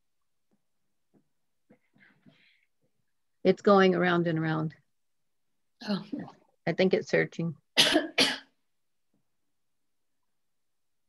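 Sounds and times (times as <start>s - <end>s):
woman coughing: 7.8s - 8.6s.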